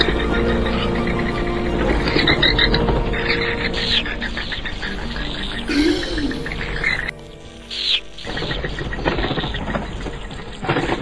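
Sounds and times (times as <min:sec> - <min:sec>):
background music drone: 0:00.0 - 0:11.0.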